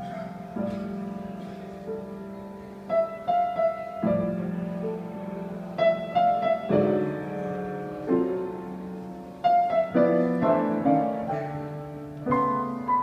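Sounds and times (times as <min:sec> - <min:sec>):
grand piano chords: 0:00.0 - 0:13.0.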